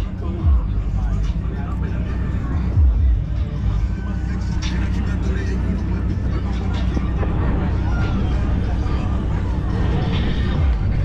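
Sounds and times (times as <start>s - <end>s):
car engines rumbling: 0.0s - 11.0s
crowd chatter: 0.0s - 11.0s.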